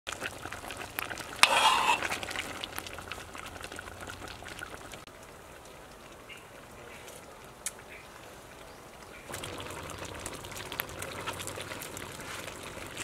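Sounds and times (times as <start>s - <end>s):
food sizzling in hot oil: 0.1s - 5.1s, 9.3s - 13.0s.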